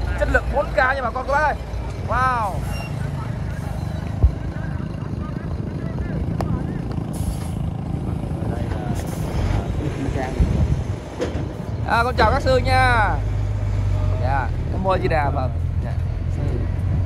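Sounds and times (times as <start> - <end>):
diesel truck engine rumbling: 0.0 - 17.0.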